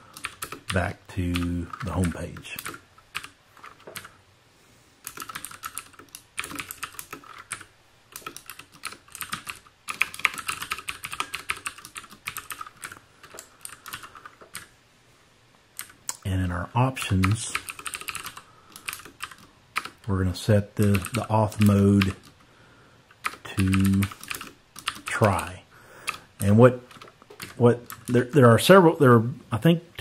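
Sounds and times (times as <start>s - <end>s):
computer keyboard typing: 0.1s - 4.2s, 5.0s - 14.7s, 15.8s - 16.2s, 17.0s - 20.1s, 20.8s - 22.4s, 23.1s - 25.4s, 26.0s - 28.4s
person speaking: 0.4s - 2.8s, 15.8s - 17.8s, 19.9s - 22.3s, 23.3s - 30.0s.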